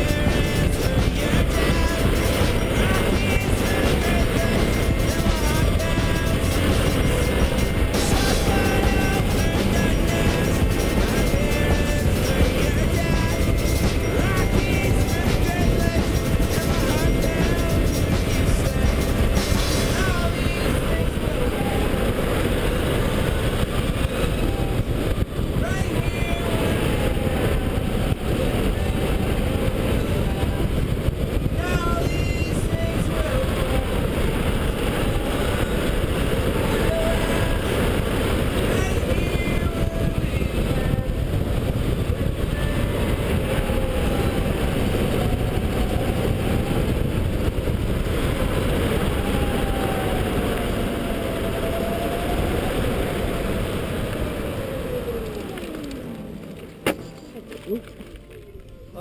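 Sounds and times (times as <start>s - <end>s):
wind rushing over camera: 0.0s - 59.0s
electric go-kart motor whine: 40.3s - 56.9s.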